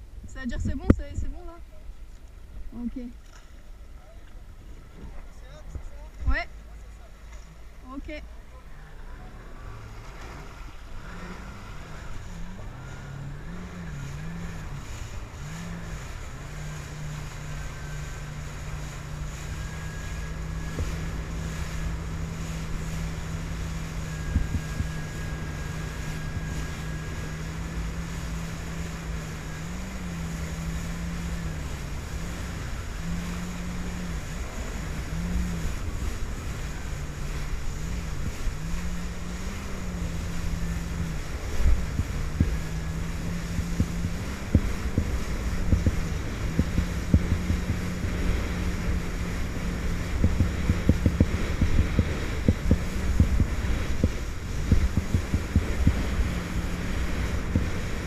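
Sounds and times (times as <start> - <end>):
jet ski engine droning: 0.0 - 58.0
water spray rushing: 9.1 - 58.0
wind buffeting microphone: 10.4 - 58.0.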